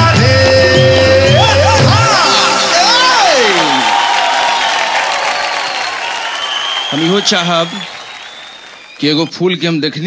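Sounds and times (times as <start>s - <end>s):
audience applauding: 1.4s - 9.7s
man speaking into a microphone: 9.0s - 10.0s.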